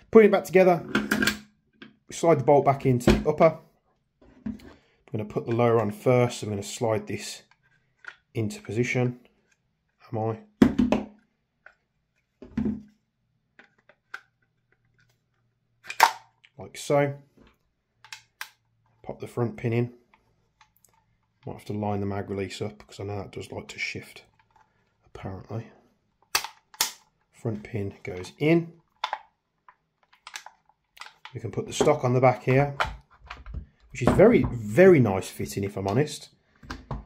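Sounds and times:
plastic parts clicking and tapping: 13.5s - 16.5s, 17.4s - 19.0s, 28.9s - 32.0s, 32.7s - 34.5s.

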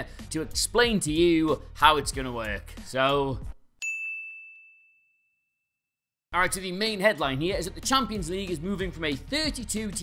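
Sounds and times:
bell-like ding: 3.8s - 5.6s.

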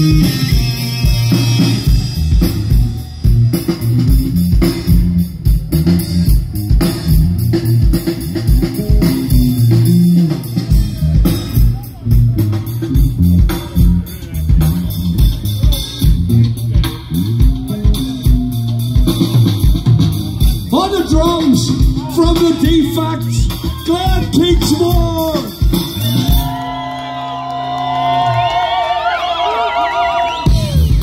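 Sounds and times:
electric guitar: 0.0s - 22.4s
steady drumbeat: 0.0s - 28.5s, 30.4s - 31.0s
heavy bass guitar line: 0.0s - 28.7s, 30.4s - 31.0s.

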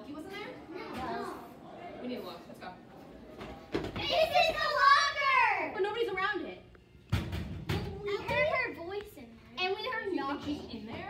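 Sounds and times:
child's voice: 7.8s - 10.7s.

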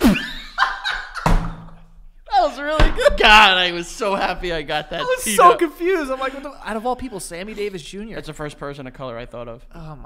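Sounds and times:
thud on table: 1.2s - 1.8s
man laughing: 5.0s - 7.6s.

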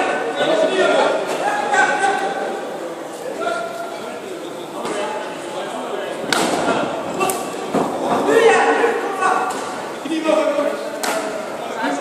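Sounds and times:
crowd shouting: 6.8s - 9.5s.

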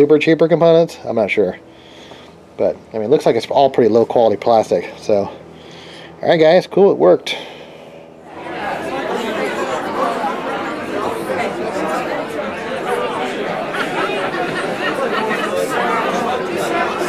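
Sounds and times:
crowd chatter: 7.3s - 17.0s.

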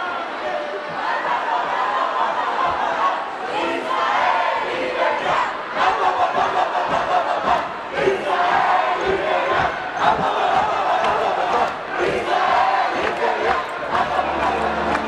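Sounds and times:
crowd shouting and chanting: 0.0s - 15.0s.

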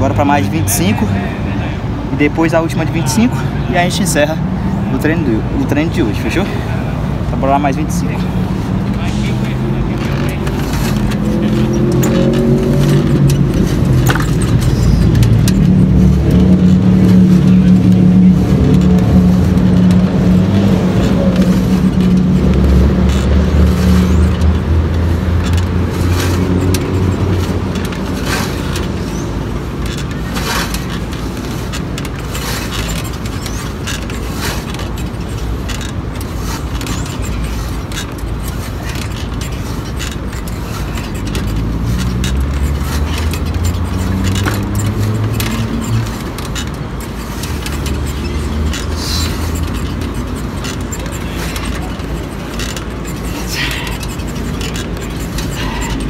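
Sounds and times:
engine droning: 0.0s - 56.0s.

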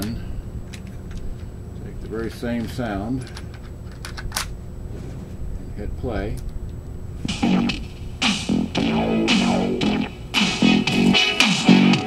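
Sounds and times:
guitar and bass music with beat: 7.3s - 12.0s.

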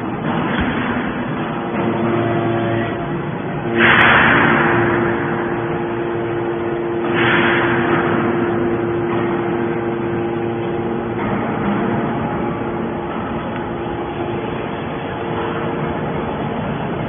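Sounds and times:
pump motor humming: 0.0s - 17.0s
loud hydraulic rushing hiss: 1.0s - 17.0s.

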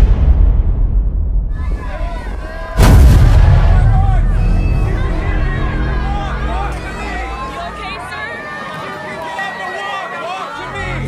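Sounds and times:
loud explosive blast: 0.0s - 6.1s
low rumble: 0.0s - 6.9s
faint voices calling out: 3.6s - 11.0s.

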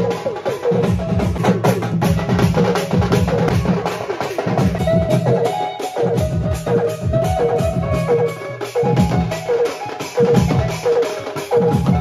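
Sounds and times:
barrel drums and hand cymbals: 0.0s - 12.0s
melody of sliding notes: 3.7s - 12.0s.

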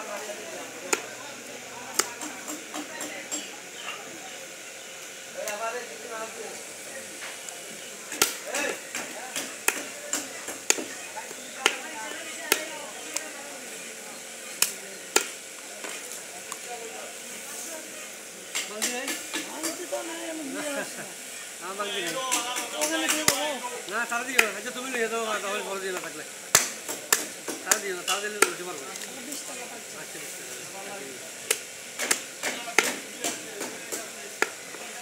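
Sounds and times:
voices talking: 0.0s - 35.0s.

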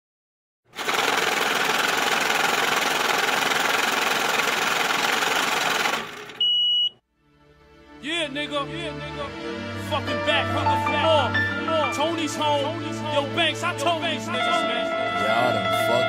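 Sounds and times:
high steady beep: 6.4s - 7.0s
music: 7.1s - 16.0s.

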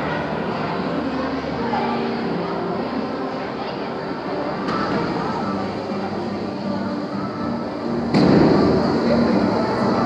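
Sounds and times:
loud noisy ride starting up: 0.0s - 10.0s.

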